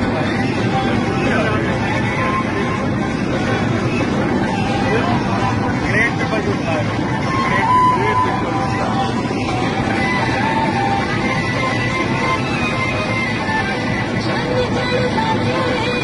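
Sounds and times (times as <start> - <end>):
people talking: 0.0 - 11.1
airliner cabin drone: 0.0 - 16.0.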